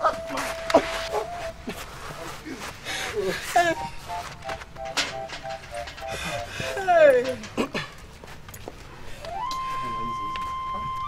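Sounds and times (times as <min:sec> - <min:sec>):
two-note beeping: 0:00.0 - 0:01.6, 0:03.8 - 0:06.9.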